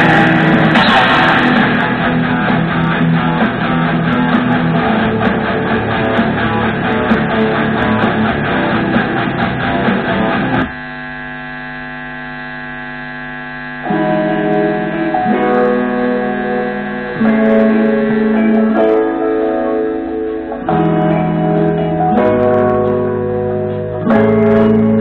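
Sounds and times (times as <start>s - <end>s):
amplifier mains hum: 0.0s - 25.0s
electric guitar through amplifier: 0.0s - 25.0s.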